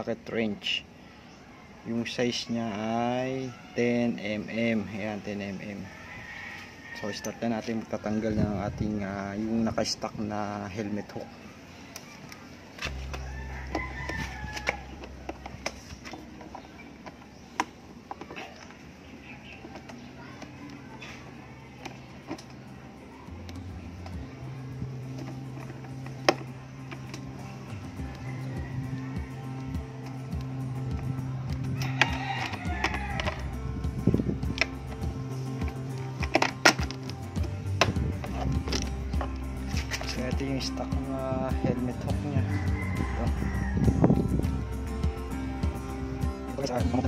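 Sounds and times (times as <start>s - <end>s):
rooster crowing: 5.6s - 7.8s, 12.9s - 15.7s, 27.0s - 30.4s, 31.6s - 33.7s, 42.3s - 44.4s
background music with bass line: 12.8s - 16.2s, 22.6s - 47.0s.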